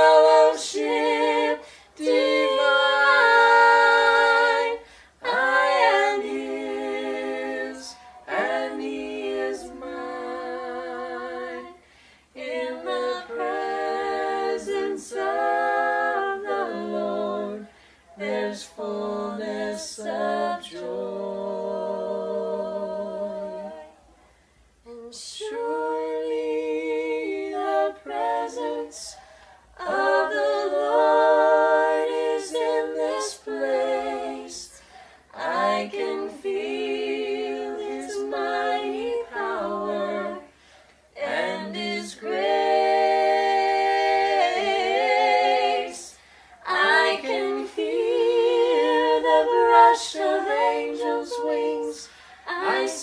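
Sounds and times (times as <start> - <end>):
people singing a cappella: 0.0 - 53.0
singers breathing: 1.6 - 2.0, 4.8 - 5.2, 11.8 - 12.4, 17.7 - 18.1, 29.1 - 29.8, 34.7 - 35.4, 40.5 - 41.1, 46.1 - 46.6, 52.0 - 52.5.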